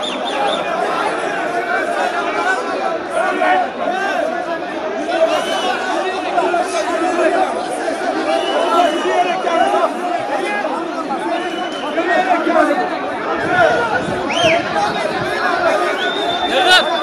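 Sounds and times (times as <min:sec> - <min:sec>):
crowd shouting and talking: 0:00.0 - 0:17.0
short whistles: 0:05.3 - 0:05.9, 0:08.3 - 0:09.3, 0:11.4 - 0:12.1, 0:14.3 - 0:14.7, 0:15.9 - 0:17.0.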